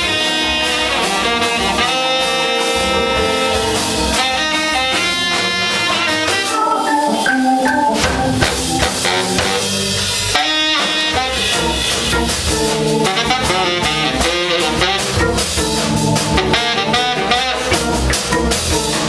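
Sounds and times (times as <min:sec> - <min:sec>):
baritone saxophone: 0:00.0 - 0:07.0, 0:08.4 - 0:12.3, 0:13.0 - 0:18.2
soul-jazz band playing: 0:00.0 - 0:19.0.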